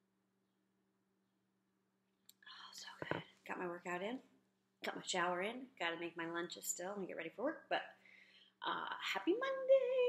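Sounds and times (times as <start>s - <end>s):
woman whispering breathily: 2.4s - 3.3s.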